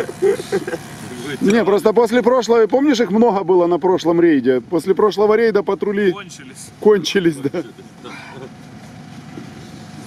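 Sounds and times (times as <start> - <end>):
vehicle engine idling: 4.6 - 10.0.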